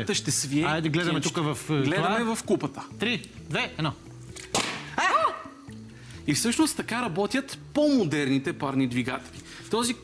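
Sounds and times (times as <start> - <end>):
can imploding with sharp crack: 4.4 - 5.0.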